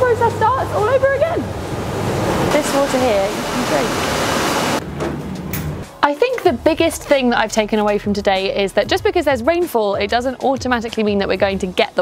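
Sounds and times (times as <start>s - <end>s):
rushing machinery noise: 0.0s - 6.0s.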